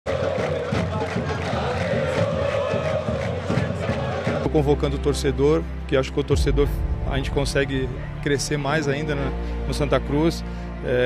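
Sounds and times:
stadium crowd chanting and shouting: 0:00.1 - 0:04.7.

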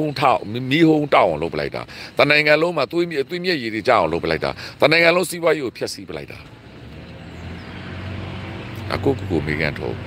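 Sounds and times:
passing road vehicle rumble: 0:01.2 - 0:10.0.

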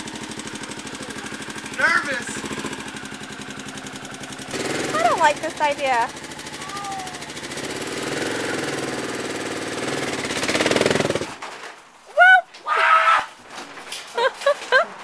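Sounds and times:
motorcycle engine running: 0:00.0 - 0:11.3
loud shouts: 0:06.6 - 0:07.4, 0:12.1 - 0:13.4.

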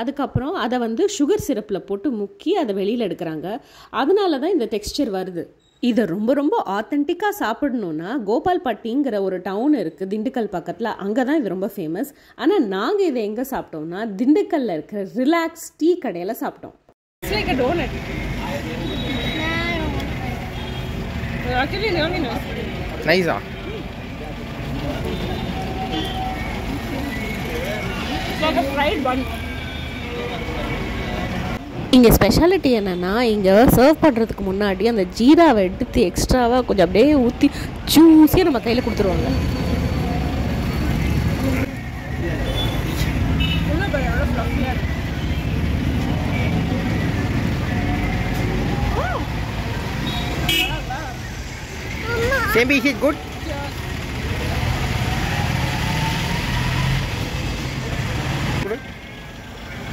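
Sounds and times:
low traffic rumble: 0:17.2 - 0:59.9
car horn toots: 0:18.8 - 0:19.9, 0:25.1 - 0:26.5, 0:50.0 - 0:50.9.

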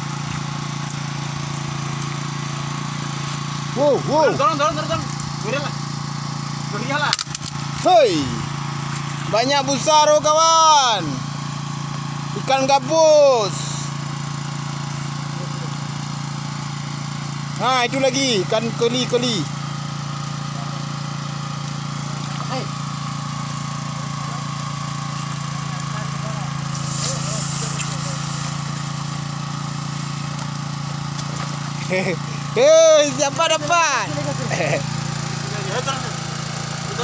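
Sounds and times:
small engine running steadily: 0:00.0 - 0:37.0.

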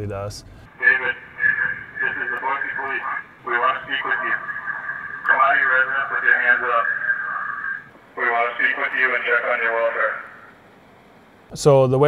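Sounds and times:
muffled speech over police radio: 0:00.7 - 0:10.5.

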